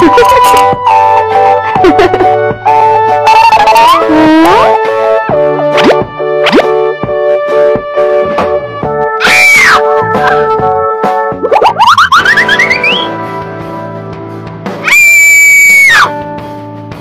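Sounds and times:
bouncy background music: 0.0 - 17.0
cartoon falling whistle: 11.5 - 13.2
high squeal: 11.8 - 13.2.

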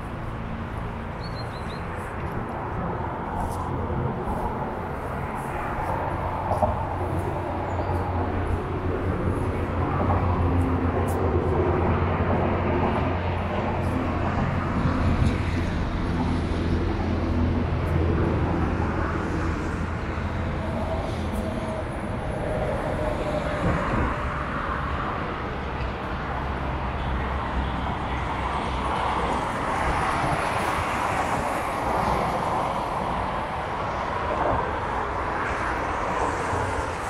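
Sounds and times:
highway traffic rumble: 0.0 - 37.0.

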